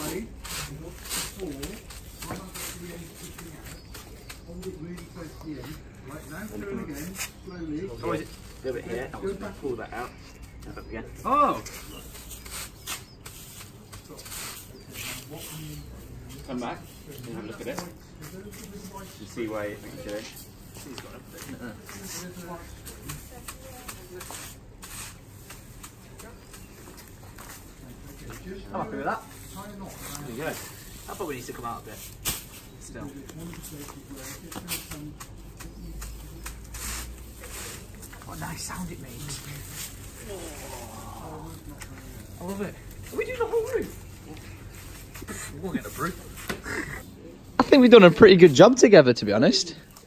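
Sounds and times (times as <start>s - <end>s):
wooden tool striking straw thatch: 0.0s - 5.7s, 22.8s - 27.7s, 30.0s - 38.4s
reed rustling: 0.0s - 50.0s.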